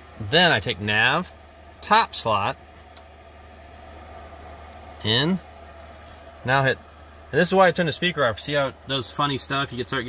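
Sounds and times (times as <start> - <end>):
cockpit avionics hum: 0.0 - 10.0.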